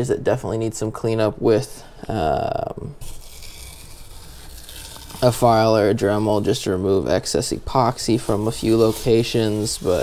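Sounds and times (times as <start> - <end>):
tape peeling with steady rustle: 3.0 - 6.8, 7.7 - 10.0.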